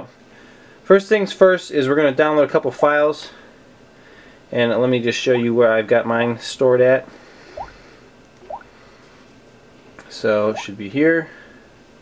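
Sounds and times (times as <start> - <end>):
short rising blips: 7.6 - 7.8, 8.4 - 8.7.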